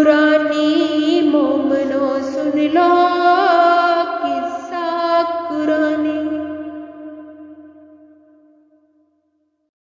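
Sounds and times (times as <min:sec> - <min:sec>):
woman singing: 0:00.0 - 0:08.0.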